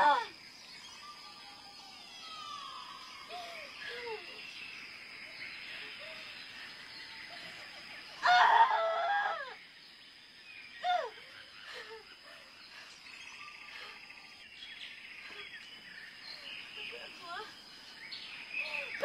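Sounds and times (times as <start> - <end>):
forest ambience hiss: 0.0 - 19.0.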